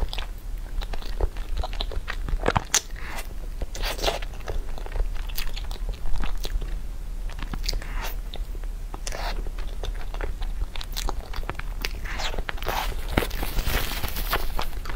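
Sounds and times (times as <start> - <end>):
chewing and wet mouth sounds: 0.0 - 14.9
tissue rustling: 12.7 - 14.9.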